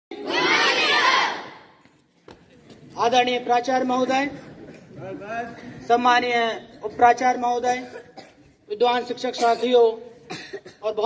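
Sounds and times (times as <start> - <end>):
crowd of children shouting: 0.1 - 1.7.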